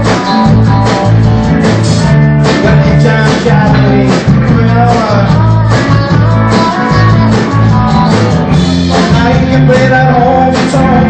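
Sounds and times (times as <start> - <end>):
live rock band playing: 0.0 - 11.0
person singing: 2.4 - 11.0.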